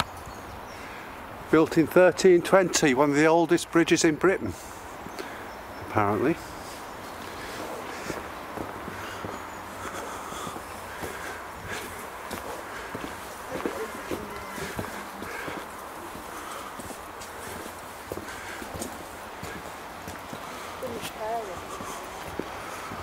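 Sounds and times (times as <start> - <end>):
footsteps on cobblestones: 7.0 - 23.0.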